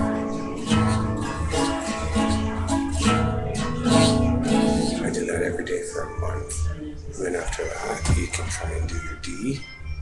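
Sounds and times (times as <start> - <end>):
acoustic guitar strumming: 0.0 - 5.9.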